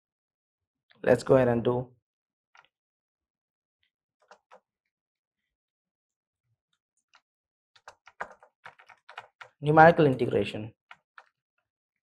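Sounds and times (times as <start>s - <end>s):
computer keyboard typing: 7.8s - 9.6s.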